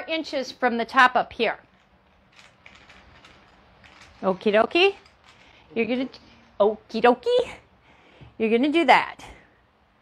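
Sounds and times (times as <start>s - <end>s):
fabric rustling: 1.7s - 6.7s.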